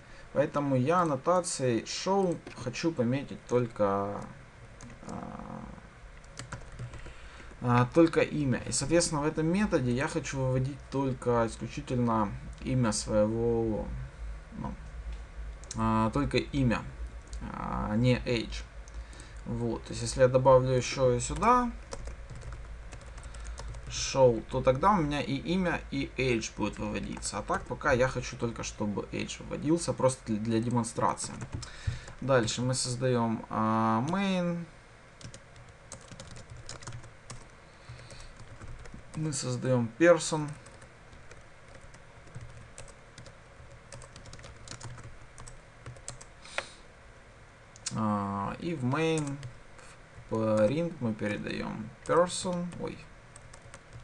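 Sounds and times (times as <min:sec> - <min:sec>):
steady low hum: 0:00.0 - 0:54.0
computer keyboard typing: 0:02.2 - 0:02.7, 0:03.5 - 0:05.5, 0:06.2 - 0:07.7, 0:21.2 - 0:24.1, 0:30.4 - 0:32.6, 0:35.2 - 0:39.3, 0:40.4 - 0:46.3, 0:49.2 - 0:49.5, 0:53.4 - 0:54.0.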